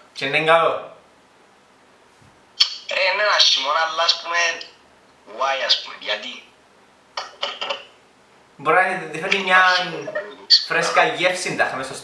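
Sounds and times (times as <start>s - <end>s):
faint room tone hiss: 0.0s - 12.0s
man speaking: 2.7s - 4.7s, 5.3s - 6.5s, 8.6s - 12.0s.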